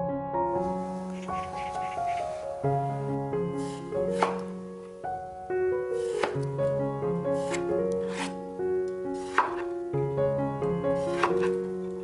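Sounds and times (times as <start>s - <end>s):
background piano music: 0.0s - 12.0s
knife cutting on wooden board: 3.6s - 4.5s, 6.0s - 6.5s, 7.3s - 8.4s, 9.2s - 9.7s, 11.0s - 11.7s.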